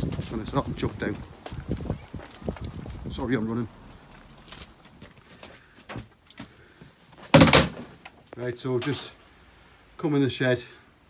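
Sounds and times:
shed door banging: 7.3 - 8.0.

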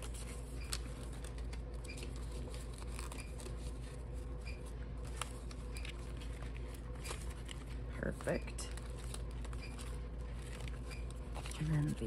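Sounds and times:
banknotes rustling and flicking: 0.0 - 12.0
low steady hum: 0.0 - 12.0.

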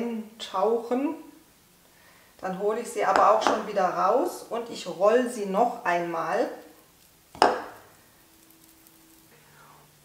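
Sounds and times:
faint steady hum: 0.0 - 10.0
palms slapping together: 7.3 - 7.8.

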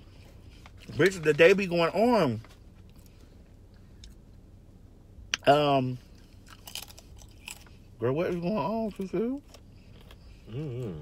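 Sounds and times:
crunchy snack chewing: 6.2 - 7.8, 9.4 - 11.0.

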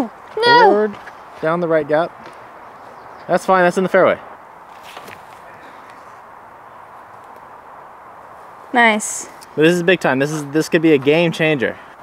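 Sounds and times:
outdoor background hiss: 0.0 - 12.0
faint footsteps on dirt path: 4.4 - 7.4.

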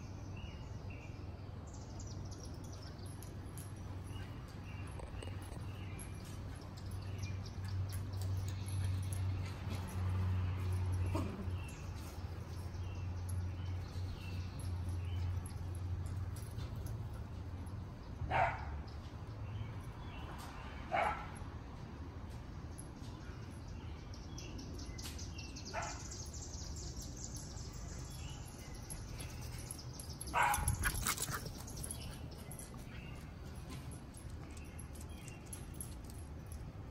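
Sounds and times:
dog barking: 20.9 - 21.4, 30.3 - 30.8.

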